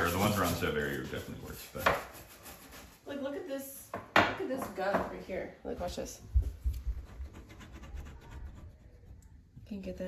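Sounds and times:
plastic knife scratching wood: 0:06.6 - 0:09.2.

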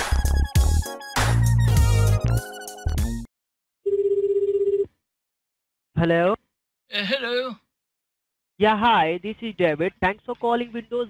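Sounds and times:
telephone ringing tone: 0:03.8 - 0:04.9.

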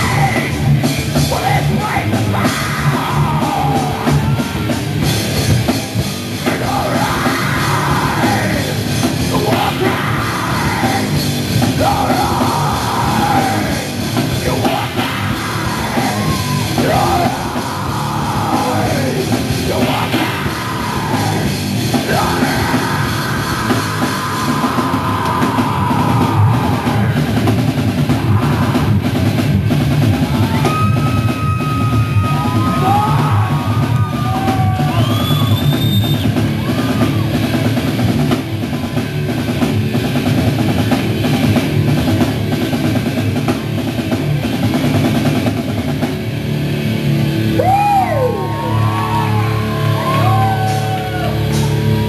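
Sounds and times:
bass guitar: 0:00.0 - 0:52.0
drum kit: 0:00.0 - 0:52.0
electric guitars: 0:00.0 - 0:52.0.

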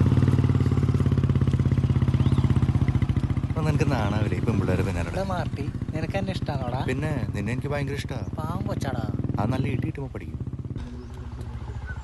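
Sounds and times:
motorcycle engine at low revs: 0:00.0 - 0:12.0.

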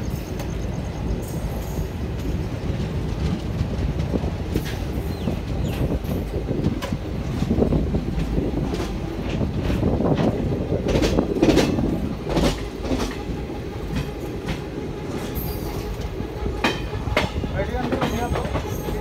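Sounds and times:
train wheels rumbling on rails: 0:00.0 - 0:19.0
wheels clacking over rail joints: 0:00.1 - 0:19.0.

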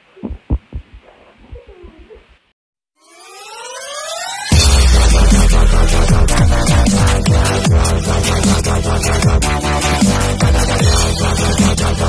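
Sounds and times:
low thumps: 0:00.2 - 0:02.2
rising synth sweep: 0:03.0 - 0:08.1.

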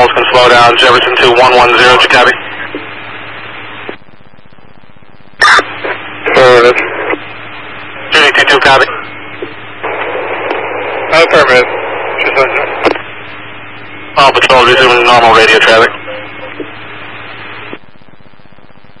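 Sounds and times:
unintelligible radio transmissions: 0:00.0 - 0:18.8
radio hiss with low hum: 0:00.0 - 0:19.0.

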